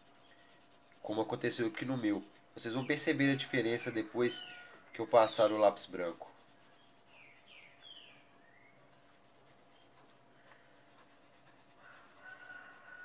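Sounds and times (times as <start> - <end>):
pencil scratching on paper: 0.0 - 2.3, 5.0 - 8.0, 8.8 - 13.0.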